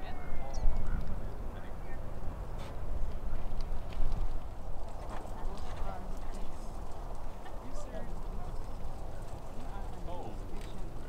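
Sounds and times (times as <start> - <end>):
faint indistinct voices: 0.0 - 11.0
wind rumbling on microphone: 0.0 - 11.0.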